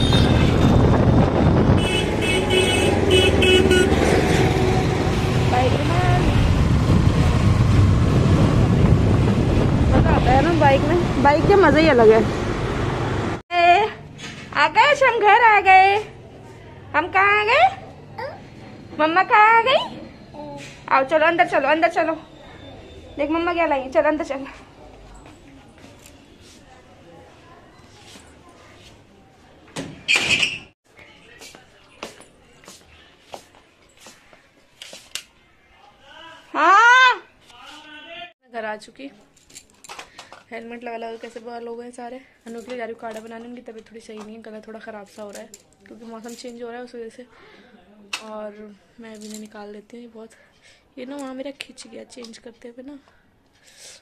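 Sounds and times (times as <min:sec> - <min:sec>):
vehicle horn: 0:00.0 - 0:01.0, 0:01.7 - 0:04.0
road and wind noise: 0:00.0 - 0:26.4.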